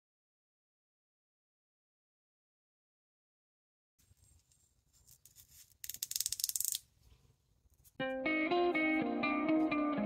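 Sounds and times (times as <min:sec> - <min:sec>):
feather rattling clicks: 0:05.8 - 0:06.8.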